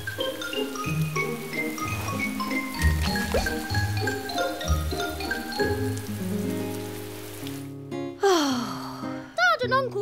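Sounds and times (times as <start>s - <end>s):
steady rainfall hiss: 0.0s - 7.9s
soft background music: 0.0s - 10.0s.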